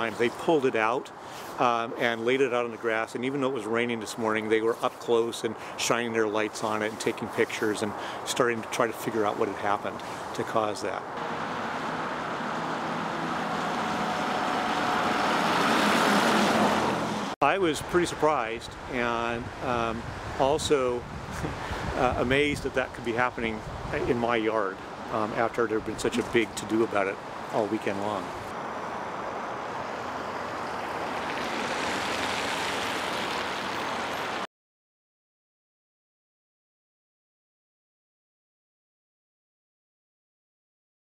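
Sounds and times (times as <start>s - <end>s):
tyres hissing on wet road: 1.1s - 1.8s, 11.2s - 17.4s, 27.2s - 34.5s.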